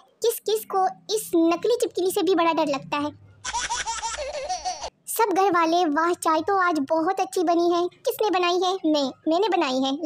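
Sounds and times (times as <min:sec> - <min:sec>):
high-pitched giggling laughter: 0:03.4 - 0:04.9.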